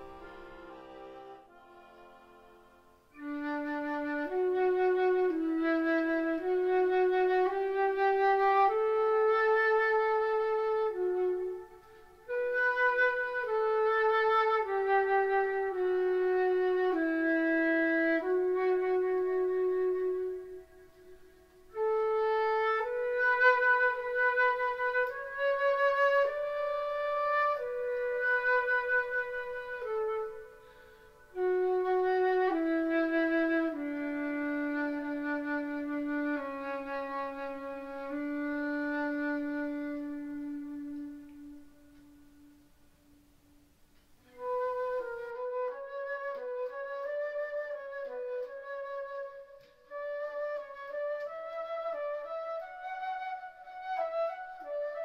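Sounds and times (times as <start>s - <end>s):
flute playing slow melody: 0.0s - 55.0s.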